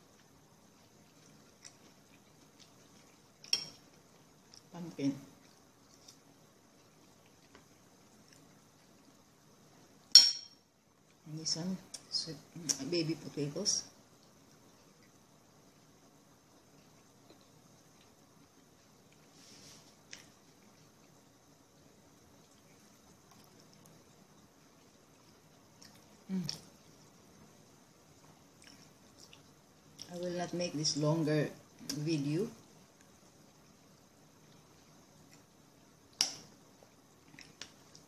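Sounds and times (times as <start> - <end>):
fork clinking on porcelain bowl: 3.5 - 3.8, 10.1 - 10.6.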